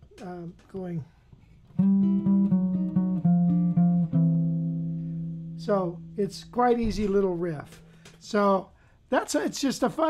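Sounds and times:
electric guitar blues lick: 1.8s - 6.6s.

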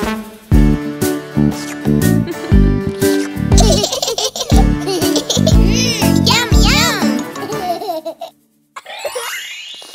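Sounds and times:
baby giggling: 3.0s - 6.2s, 7.2s - 9.5s
upbeat children's song: 3.0s - 8.3s.

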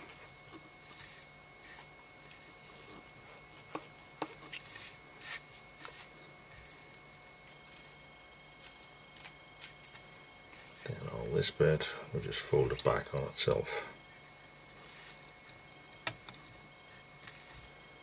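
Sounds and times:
faint steady hum: 0.0s - 18.0s
rustling of tinsel strands: 14.2s - 15.2s.

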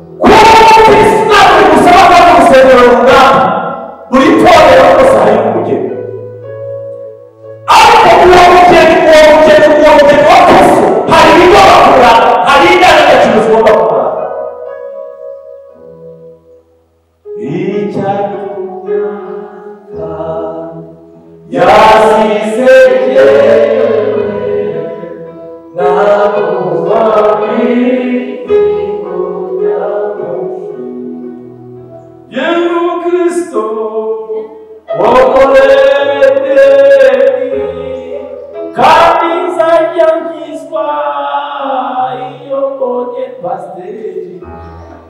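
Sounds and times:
congregation singing: 0.0s - 6.6s, 7.4s - 15.1s, 17.2s - 45.0s
held chord of steady notes: 0.0s - 45.0s.

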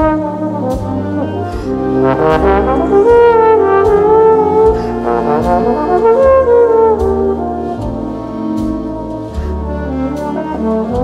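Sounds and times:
brass held notes: 0.0s - 11.0s
low sustained accompaniment: 0.0s - 11.0s
percussion strikes: 0.0s - 11.0s.

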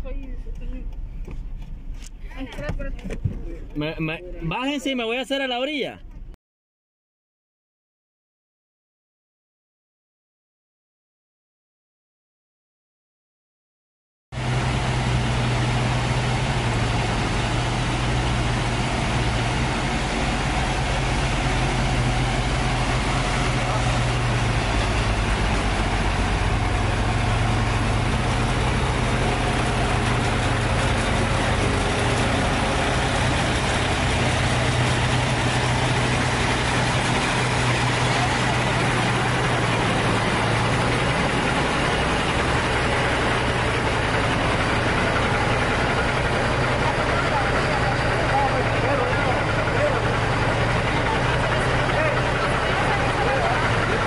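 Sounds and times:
heavy diesel engines idling: 14.4s - 54.0s.

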